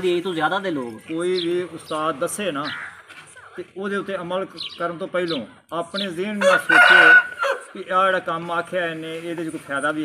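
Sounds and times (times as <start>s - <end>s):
man talking: 0.0s - 2.8s, 3.6s - 10.0s
rooster crowing: 6.4s - 7.7s.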